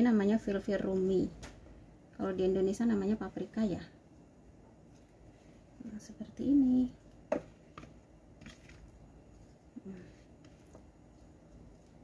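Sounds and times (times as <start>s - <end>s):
wooden spatula scraping ceramic bowl: 7.2s - 12.0s.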